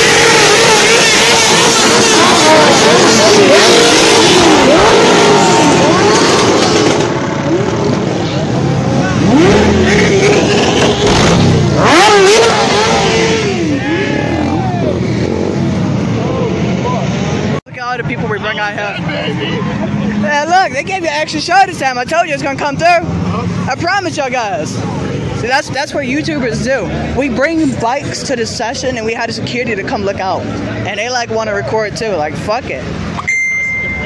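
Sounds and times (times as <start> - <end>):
motorcycles revving past: 0.0 - 17.4
quiet traffic: 0.0 - 34.0
people talking: 16.2 - 32.9.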